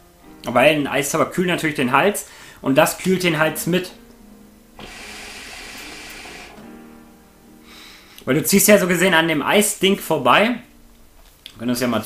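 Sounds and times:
hookah bubbling: 4.8 - 6.7.

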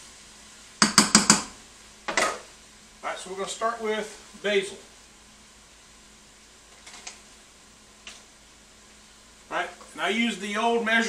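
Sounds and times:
spoon knocking on saucepan: 0.8 - 1.5.

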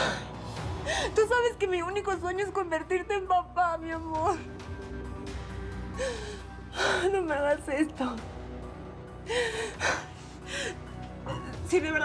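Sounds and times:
soft background music: 0.0 - 12.0
woman sobbing: 9.1 - 11.6.

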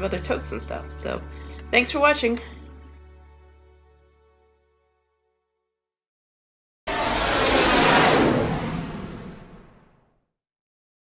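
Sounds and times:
whoosh: 6.9 - 10.0.

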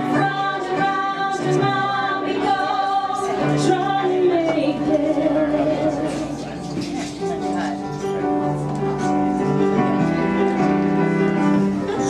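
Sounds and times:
women singing in harmony: 0.0 - 6.6
piano accompaniment: 0.0 - 12.0.

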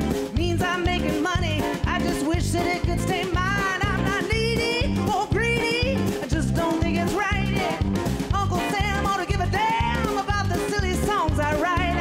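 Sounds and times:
drum and bass groove: 0.0 - 12.0.

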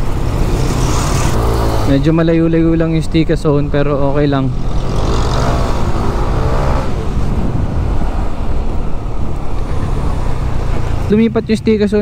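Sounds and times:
passing vehicle engine: 0.0 - 11.8
wind on microphone: 4.5 - 10.8.

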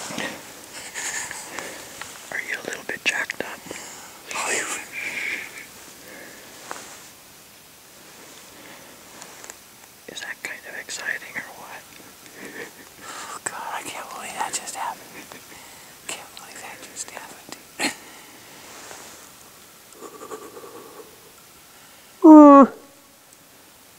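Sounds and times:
man whispering: 2.2 - 5.7, 10.1 - 11.9, 13.0 - 17.6, 22.2 - 22.8.

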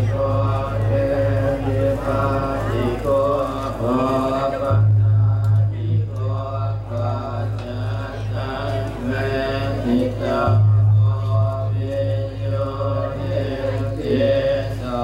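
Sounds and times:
monks chanting through microphone: 0.0 - 15.0.

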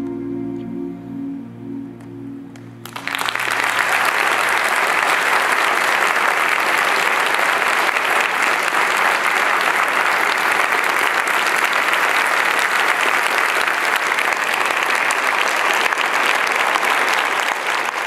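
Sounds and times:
audience applauding: 2.5 - 18.0.

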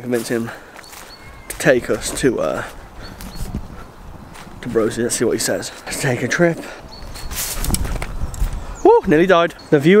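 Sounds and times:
scuffing footsteps and stumble: 7.0 - 9.6.

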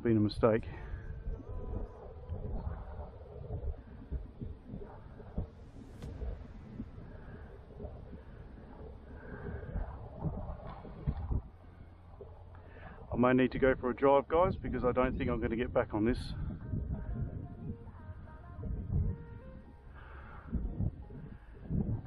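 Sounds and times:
wind buffeting microphone: 0.0 - 22.0
faint breathing: 0.6 - 13.1, 16.3 - 22.0.

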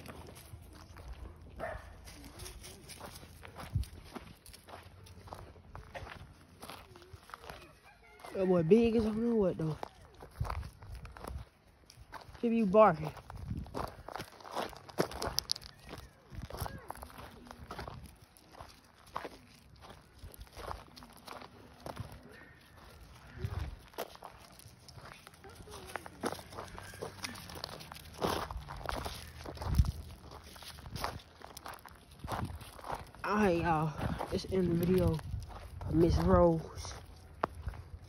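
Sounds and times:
footsteps on gravel: 0.0 - 38.0.

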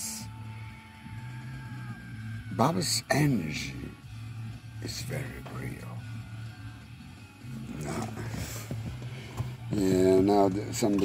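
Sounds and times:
music from car radio: 0.0 - 11.0.

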